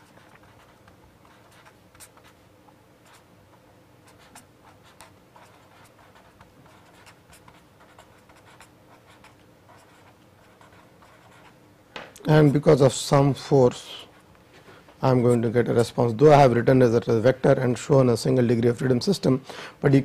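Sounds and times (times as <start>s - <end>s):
pen scratching on paper: 0.0s - 2.4s, 3.0s - 3.3s, 4.0s - 11.6s.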